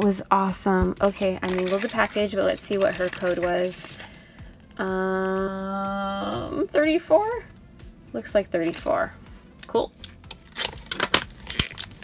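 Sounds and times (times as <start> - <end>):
plastic wrapper crinkling and tearing: 1.0 - 4.1, 10.0 - 12.0.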